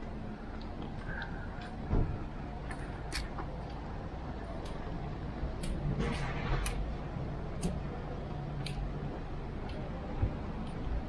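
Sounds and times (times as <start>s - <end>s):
bike tyres rolling on street: 0.0s - 11.0s.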